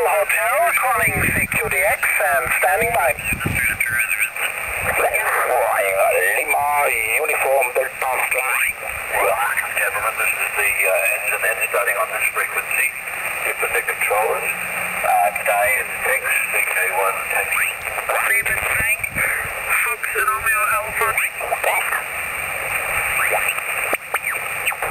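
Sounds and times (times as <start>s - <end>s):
faint radio hiss: 0.0s - 24.9s
narrow-band radio speech: 0.0s - 24.9s.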